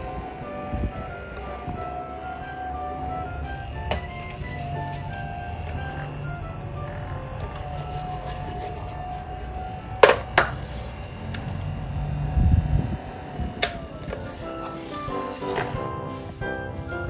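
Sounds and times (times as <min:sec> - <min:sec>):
background music: 0:00.0 - 0:11.3, 0:13.0 - 0:17.0
plastic fan switch clicks: 0:10.0 - 0:10.7, 0:13.6 - 0:14.3.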